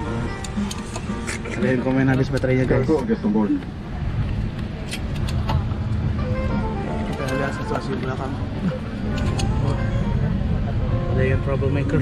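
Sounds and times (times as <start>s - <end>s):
cabin air system hum: 0.0s - 12.0s.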